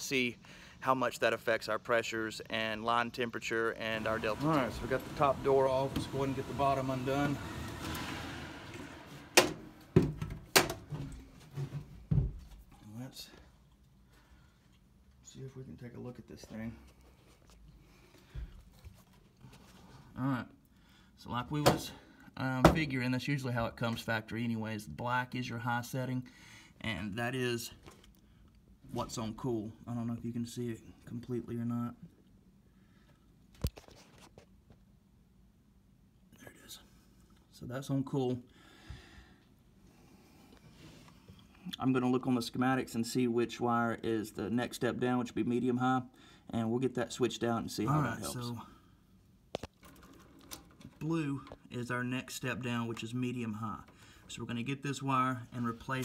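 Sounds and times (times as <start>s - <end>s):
sheet metal door scraping: 4.0s - 11.9s.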